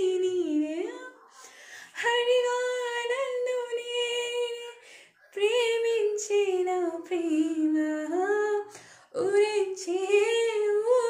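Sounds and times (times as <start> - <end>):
woman singing unaccompanied: 0.0 - 1.3, 1.9 - 11.0
breath: 1.2 - 2.0, 4.8 - 5.3, 8.7 - 9.1.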